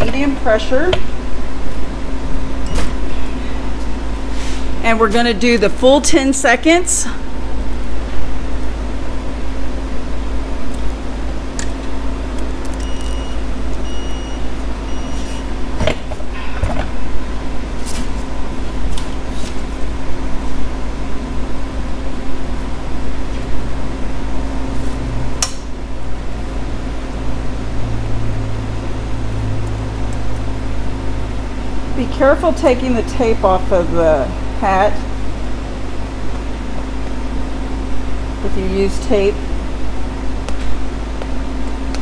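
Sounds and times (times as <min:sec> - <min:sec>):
steady mechanical hum: 0:00.0 - 0:42.0
heat press timer beeping: 0:12.8 - 0:15.5.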